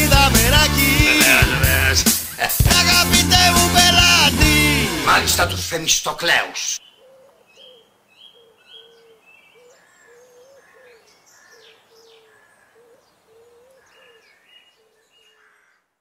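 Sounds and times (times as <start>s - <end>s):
bird chirps and twitters: 6.8s - 10.5s.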